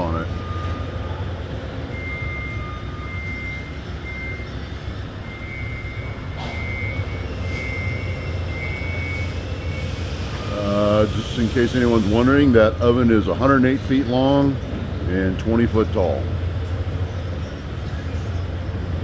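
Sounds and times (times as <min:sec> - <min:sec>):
faint reversing alarm beeping: 0:00.0 - 0:14.6
low machinery hum: 0:00.0 - 0:19.0.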